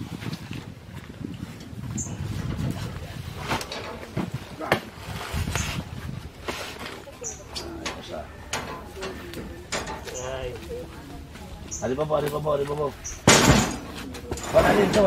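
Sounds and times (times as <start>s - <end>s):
people talking: 6.9s - 15.0s
foam boxes knocking on metal cage: 13.2s - 13.9s.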